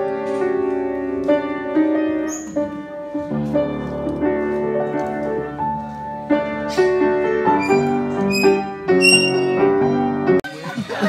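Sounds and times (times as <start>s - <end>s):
piano chords: 0.0s - 10.4s.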